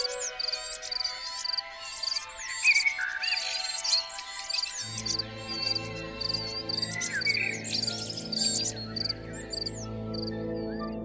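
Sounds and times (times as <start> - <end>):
birds chirping and trilling: 0.0 - 11.0
soft low background music chord: 0.0 - 11.0.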